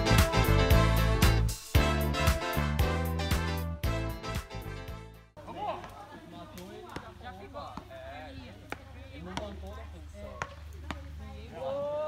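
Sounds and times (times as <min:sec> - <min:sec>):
voices talking: 0:05.4 - 0:12.0.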